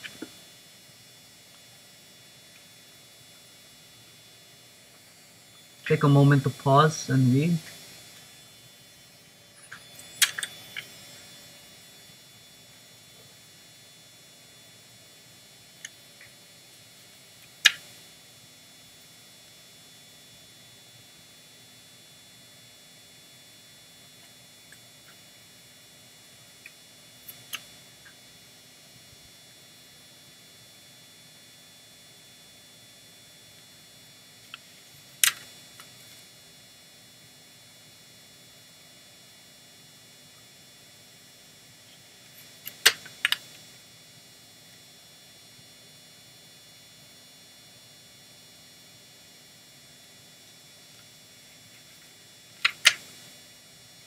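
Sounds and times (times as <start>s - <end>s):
faint electrical whine: 0.0s - 54.0s.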